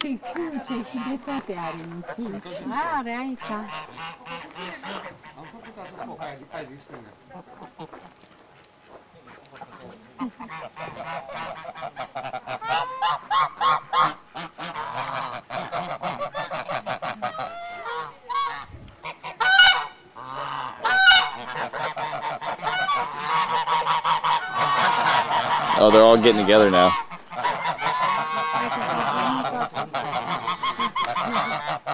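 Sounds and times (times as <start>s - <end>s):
geese honking: 0.0s - 31.9s.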